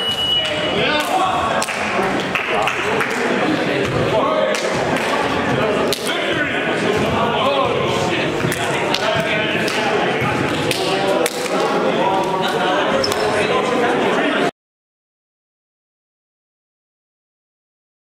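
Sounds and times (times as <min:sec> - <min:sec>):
people talking: 0:00.0 - 0:14.5.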